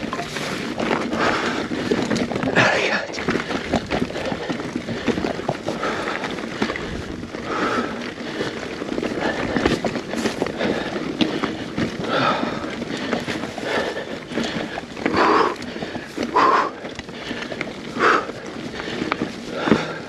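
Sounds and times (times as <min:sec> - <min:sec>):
bike rattling and clattering: 0:00.0 - 0:20.0
person breathing hard: 0:00.0 - 0:20.0
tyres crunching over dirt and stones: 0:00.0 - 0:20.0.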